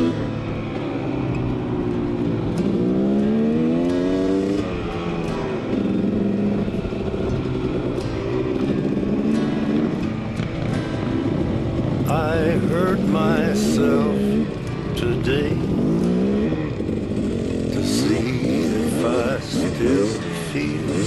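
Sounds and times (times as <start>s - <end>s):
background music: 0.0s - 21.0s
dirt bike engine revving: 0.0s - 21.0s.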